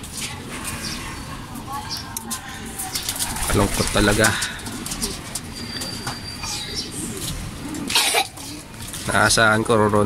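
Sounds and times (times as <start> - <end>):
pigeons cooing: 0.6 - 9.1.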